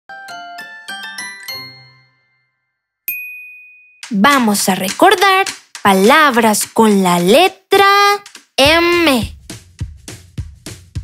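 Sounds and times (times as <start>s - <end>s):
bell-like chime jingle: 0.2s - 4.1s
high ding: 3.1s - 4.0s.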